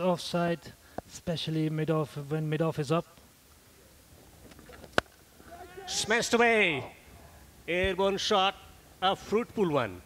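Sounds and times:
quiet ground noise: 0.0 - 10.0
man calling excitedly: 5.4 - 7.0.

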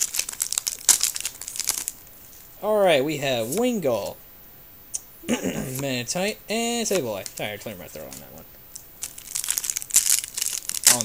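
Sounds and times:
foil wrapper crinkling and tearing: 0.0 - 2.4, 6.8 - 11.0.

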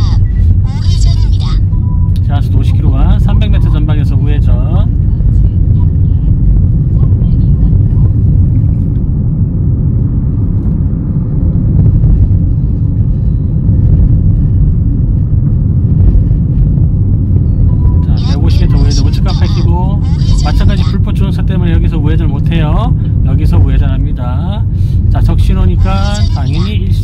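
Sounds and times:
road and engine rumble in car: 0.0 - 27.0
man speaking: 18.0 - 27.0.

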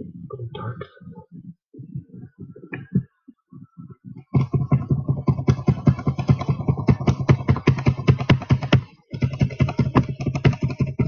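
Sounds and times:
rapid typing on laptop keyboard: 4.3 - 11.0.

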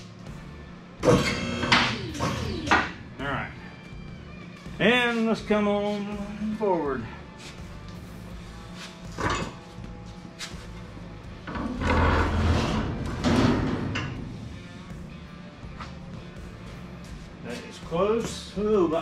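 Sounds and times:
background music: 0.0 - 19.0
metal frame rolling and scraping: 11.4 - 14.6.

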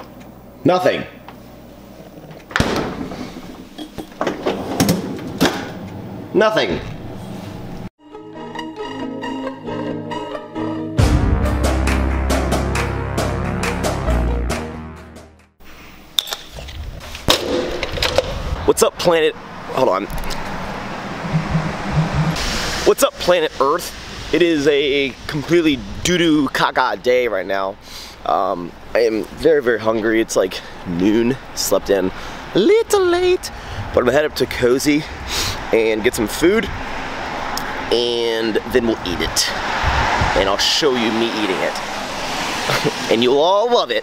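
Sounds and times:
car passing: 19.1 - 25.3, 34.9 - 44.0
low engine hum: 19.5 - 22.4.

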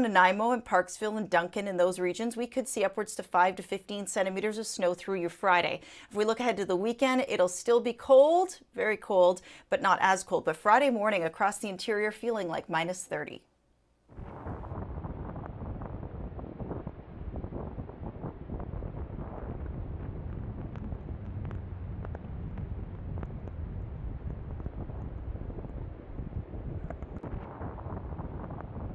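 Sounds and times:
blizzard wind buffeting microphone: 14.1 - 28.9.

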